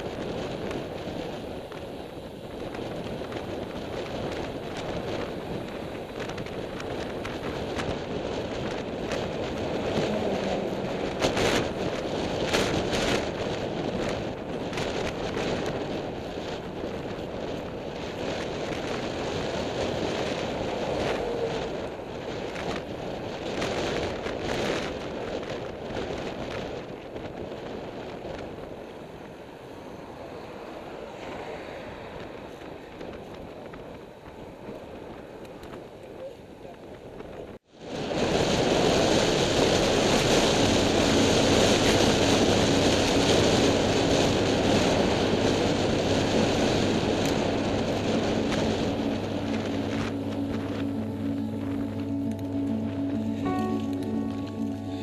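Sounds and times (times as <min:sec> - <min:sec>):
tyre noise on tarmac: 0:00.0 - 0:55.0
wind rushing over microphone: 0:00.0 - 0:55.0.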